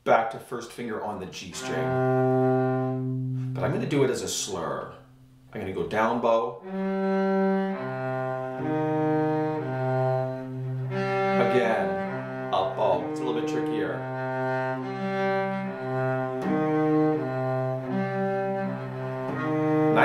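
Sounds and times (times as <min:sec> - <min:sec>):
bowed cello: 0:01.5 - 0:04.2, 0:06.6 - 0:20.0.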